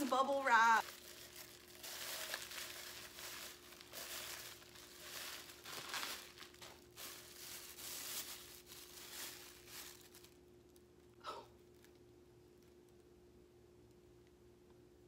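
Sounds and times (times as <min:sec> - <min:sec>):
bubble wrap crinkling: 0:00.0 - 0:13.1.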